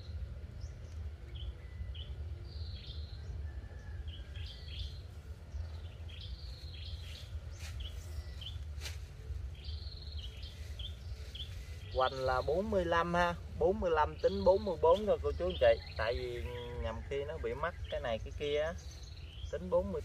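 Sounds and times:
small birds chirping: 0.0s - 20.0s
steady low rumble: 0.0s - 20.0s.

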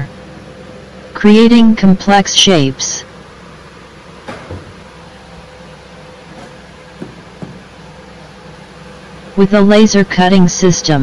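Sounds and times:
machine humming: 0.0s - 11.0s
light knocks: 6.4s - 7.6s.

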